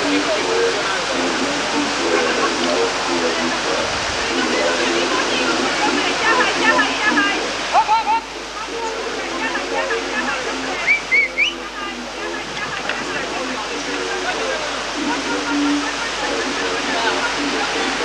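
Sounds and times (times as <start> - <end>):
spectators' voices: 0.0 - 18.0
whitewater rushing over rocks: 0.0 - 18.0.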